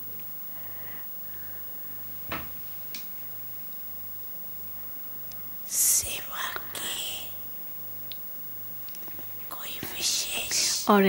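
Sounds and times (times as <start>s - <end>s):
person whispering: 5.7s - 7.4s, 9.5s - 11.0s.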